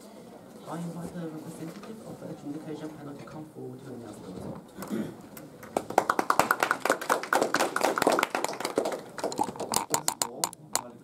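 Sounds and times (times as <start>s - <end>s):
audience applauding: 5.6s - 9.9s.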